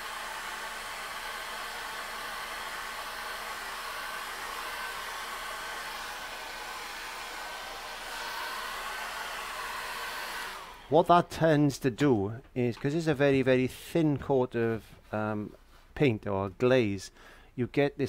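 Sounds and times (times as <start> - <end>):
hair dryer blowing: 0.0 - 11.2.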